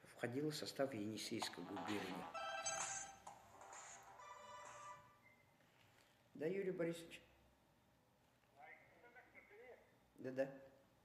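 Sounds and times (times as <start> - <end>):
phone ringtone: 1.7 - 5.2.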